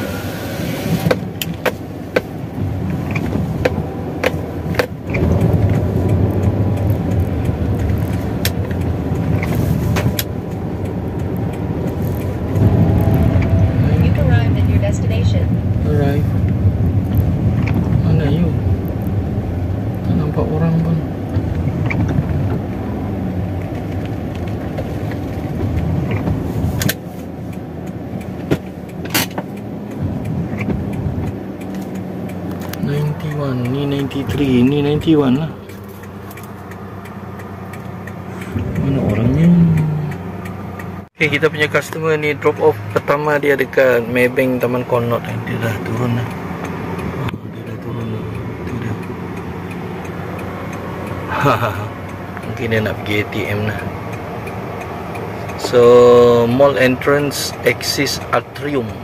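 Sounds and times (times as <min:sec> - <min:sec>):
engine and road rumble: 0:00.0 - 0:59.0
sharp clicks: 0:01.0 - 0:13.7, 0:23.5 - 0:59.0.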